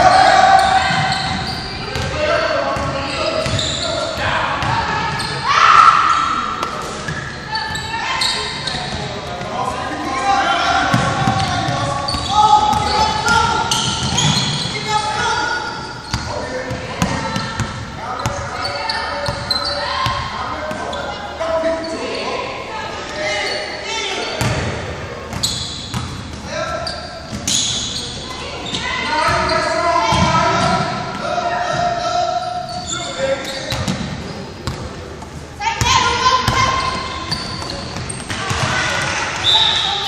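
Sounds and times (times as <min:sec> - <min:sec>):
players and spectators shouting: 0:00.0 - 0:06.6, 0:35.6 - 0:40.0.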